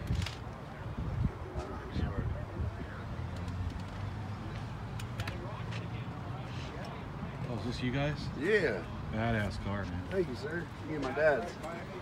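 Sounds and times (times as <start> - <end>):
faint background chatter: 0.6 - 12.0.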